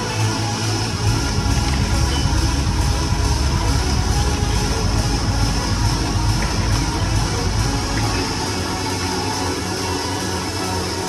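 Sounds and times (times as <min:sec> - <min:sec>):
indoor crowd noise: 0:00.0 - 0:11.0
music over pa system: 0:00.0 - 0:11.0.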